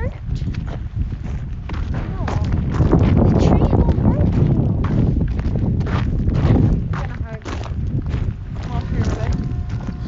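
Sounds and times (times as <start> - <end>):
footsteps on a path: 0.0 - 10.0
low rumble: 0.0 - 10.0.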